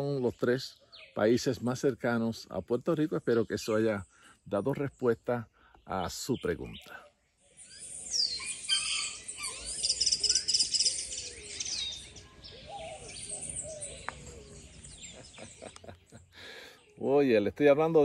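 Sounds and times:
birds chirping and singing: 0.0s - 18.0s
outdoor background: 0.0s - 18.0s
fast high bird trill: 7.7s - 14.0s.

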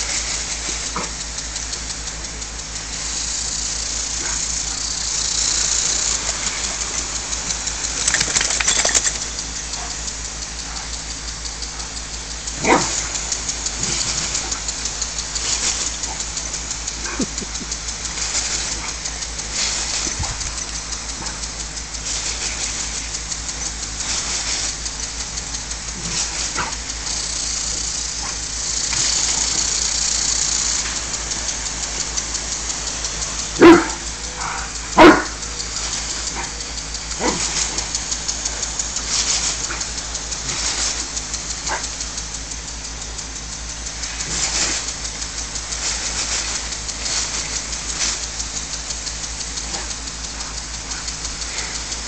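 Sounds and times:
lawn sprinkler spraying water: 0.0s - 52.0s
dog barking loudly: 33.5s - 35.4s.

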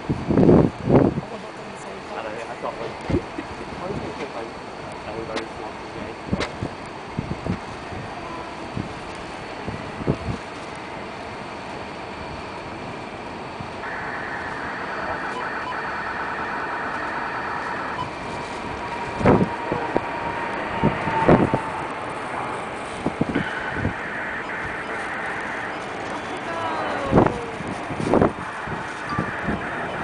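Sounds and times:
jet engines rumbling: 0.0s - 30.0s.

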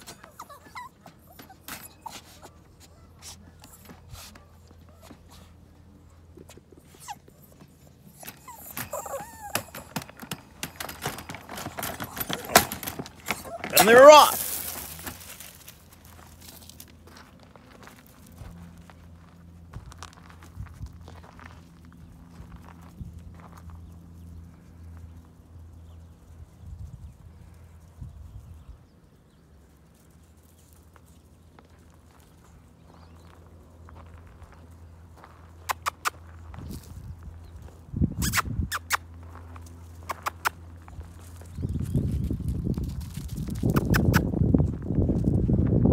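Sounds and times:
footsteps on gravel: 2.3s - 25.4s, 29.9s - 37.9s, 39.0s - 43.8s.

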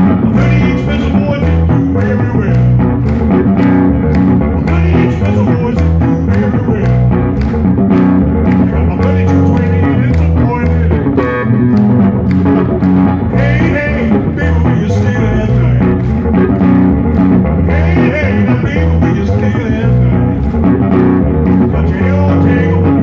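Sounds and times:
man singing: 0.0s - 2.9s, 4.4s - 7.3s, 8.4s - 11.5s, 13.3s - 16.0s, 17.6s - 20.5s, 21.6s - 23.0s
electric bass guitar plucked: 0.0s - 23.0s.

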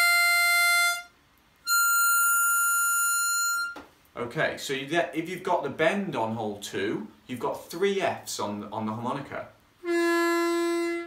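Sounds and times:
harmonica draw notes: 0.0s - 3.9s, 9.8s - 11.0s.

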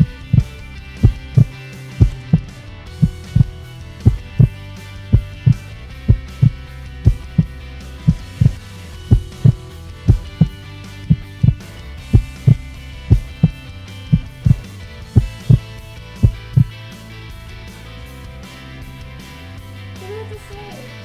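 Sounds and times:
heartbeat thumps: 0.0s - 16.8s
sustained musical drone: 0.0s - 19.9s.

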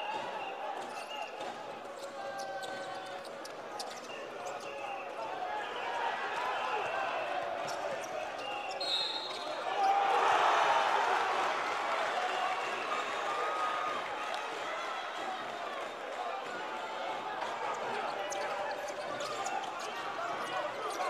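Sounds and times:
crowd voices and shouts: 0.0s - 21.0s.

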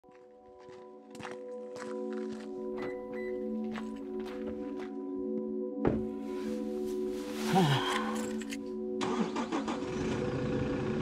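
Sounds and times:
footsteps: 0.1s - 7.5s.

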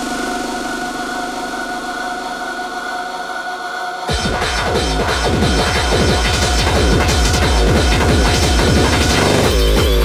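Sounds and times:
distorted synth drone pulsing: 0.0s - 10.0s.

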